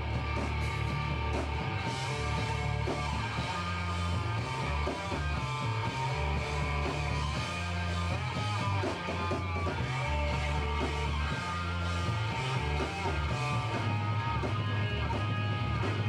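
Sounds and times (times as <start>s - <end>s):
distorted electric guitar: 0.0s - 16.0s
heavy low riff: 0.0s - 16.0s.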